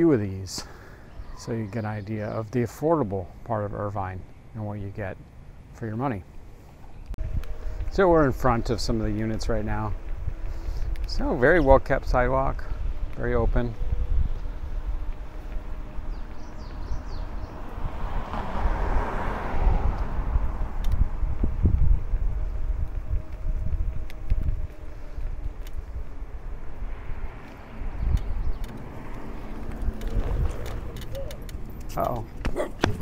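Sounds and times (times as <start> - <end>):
wind buffeting microphone: 6.4 - 33.0.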